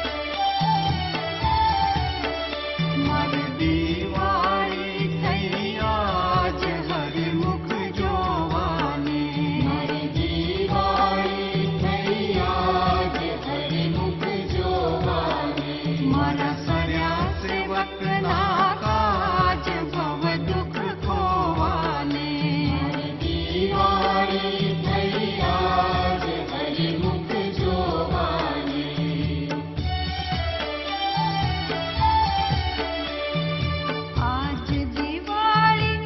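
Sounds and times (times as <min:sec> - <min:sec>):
instrumental music: 0:00.0 - 0:36.0
devotional chanting: 0:02.8 - 0:30.7.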